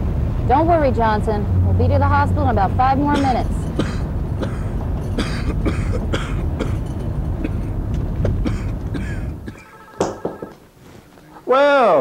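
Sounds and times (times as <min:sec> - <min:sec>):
van rumbling: 0:00.0 - 0:11.2
man coughing: 0:03.1 - 0:06.8, 0:08.4 - 0:09.8.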